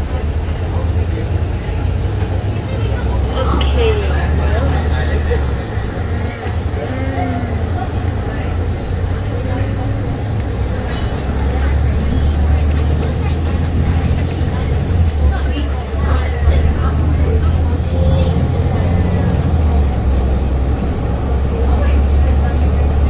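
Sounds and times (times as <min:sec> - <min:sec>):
background voices: 0:00.0 - 0:23.0
bus engine rumble: 0:00.0 - 0:23.0.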